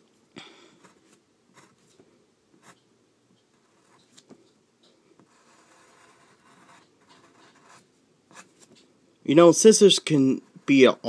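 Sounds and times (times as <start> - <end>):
pencil scratching on paper: 3.6 - 4.0, 5.2 - 8.7.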